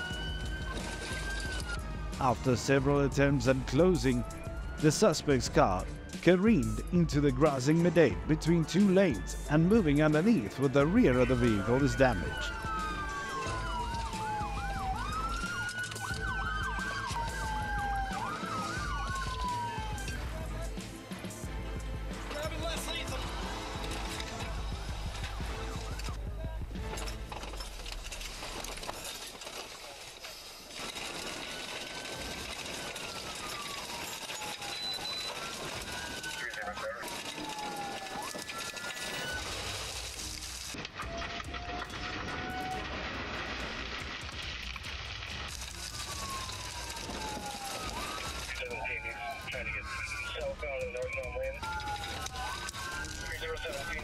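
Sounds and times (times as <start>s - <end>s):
background music: 0.0s - 28.1s, 43.6s - 54.0s
police sirens wailing: 0.0s - 28.1s, 30.7s - 43.4s, 44.6s - 54.0s.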